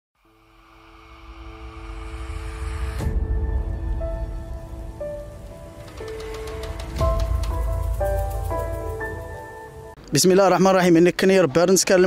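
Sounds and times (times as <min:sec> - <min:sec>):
logo intro music: 0:00.2 - 0:10.0.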